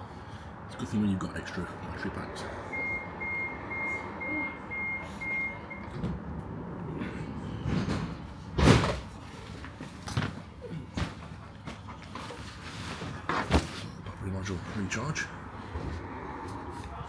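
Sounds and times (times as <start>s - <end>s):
tram door warning beeps: 2.7s - 6.0s
tram running noise: 4.8s - 17.0s.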